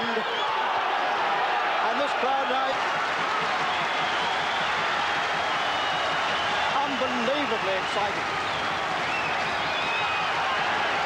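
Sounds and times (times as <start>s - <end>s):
crowd cheering: 0.0s - 11.0s
crowd clapping: 0.0s - 11.0s.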